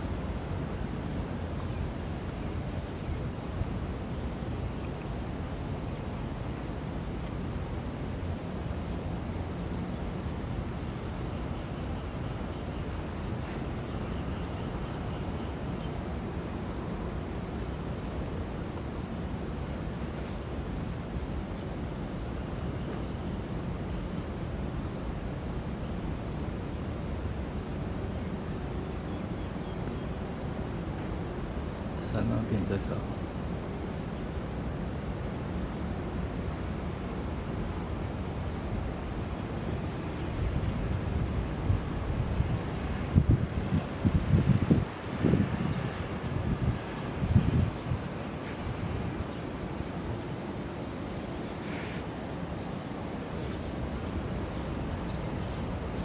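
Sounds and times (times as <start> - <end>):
wind noise on microphone: 33.2 - 56.0.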